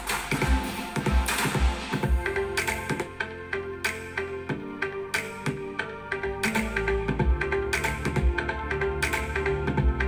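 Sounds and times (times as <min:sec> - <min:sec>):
music with bass beat: 0:00.0 - 0:10.0.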